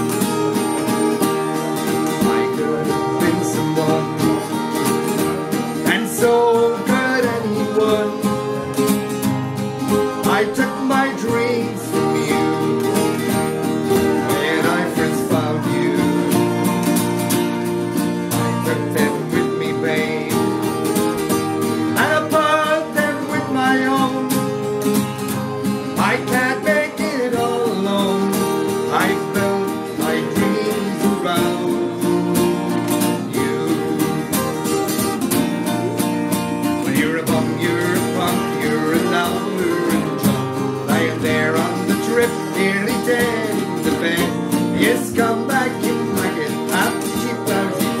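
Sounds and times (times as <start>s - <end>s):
acoustic guitars strumming: 0.0s - 48.0s.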